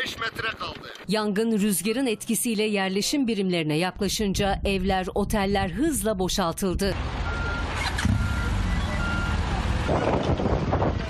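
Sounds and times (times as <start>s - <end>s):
diesel engine rumble: 4.4s - 11.0s
reversing alarm beeping: 7.2s - 9.4s.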